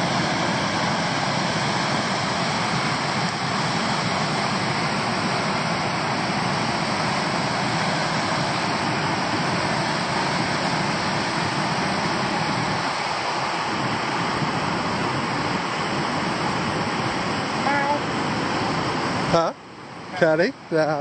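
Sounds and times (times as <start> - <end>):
water rushing over weir: 0.0 - 21.0.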